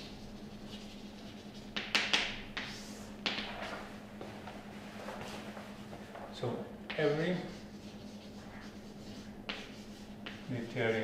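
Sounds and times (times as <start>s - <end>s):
chalk writing on blackboard: 0.0s - 3.0s, 6.9s - 11.0s
low room hum: 0.0s - 11.0s
chalk clicking against board: 1.7s - 3.5s, 9.5s - 10.6s.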